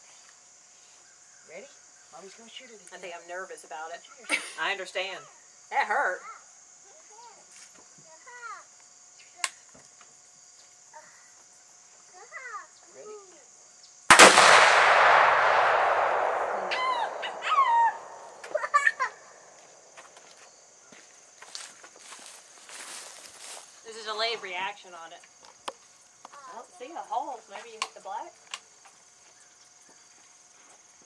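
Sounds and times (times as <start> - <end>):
rifle shot with echo: 14.1 - 18.3.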